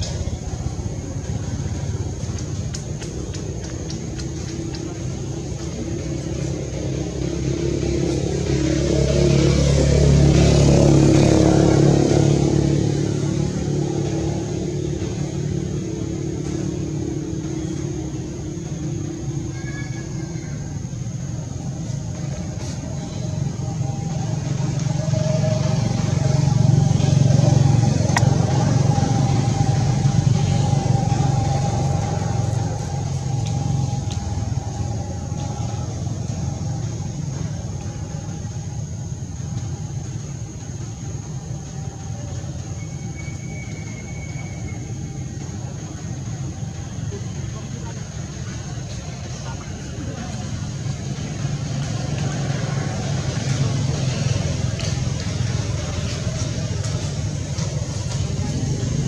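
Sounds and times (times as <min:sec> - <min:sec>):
vehicle engine rumble passing: 0:00.0 - 0:59.0.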